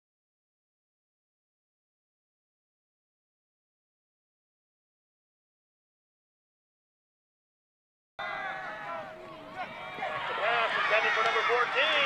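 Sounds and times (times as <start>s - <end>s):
people shouting and cheering: 8.2s - 12.0s.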